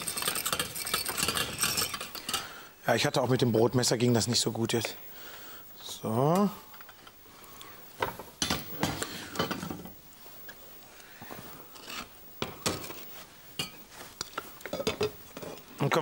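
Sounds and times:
pots being handled: 0.0s - 2.6s, 8.0s - 10.6s, 11.2s - 16.0s.

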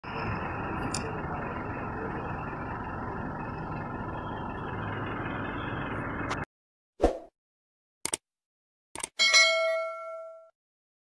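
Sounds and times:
vehicle road and engine noise: 0.0s - 6.5s.

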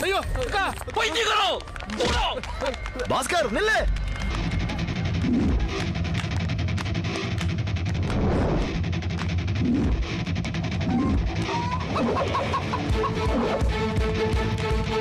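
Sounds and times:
guitar over driving beat: 4.3s - 15.0s.

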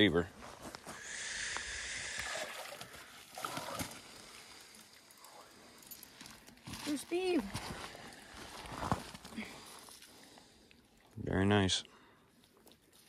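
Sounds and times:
water pouring and splashing: 1.8s - 13.0s
water sloshing: 2.0s - 11.2s.

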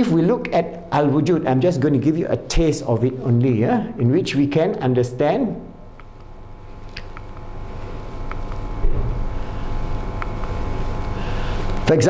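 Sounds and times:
faint hum: 0.0s - 12.0s
low rumble: 8.8s - 10.1s.

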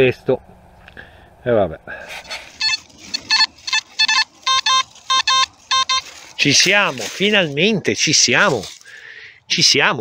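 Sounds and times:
metal detector beeping: 2.5s - 7.6s.

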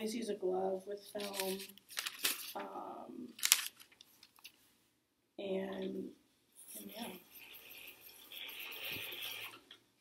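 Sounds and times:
film reels rubbing: 6.7s - 9.7s.

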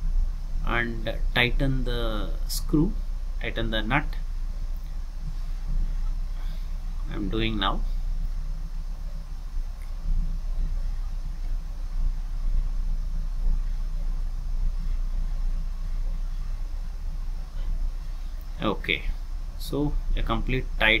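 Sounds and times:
low machinery drone: 0.0s - 21.0s.

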